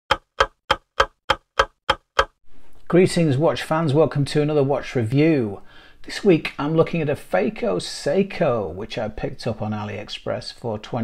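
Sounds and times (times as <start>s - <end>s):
clock ticking: 0.1s - 2.4s.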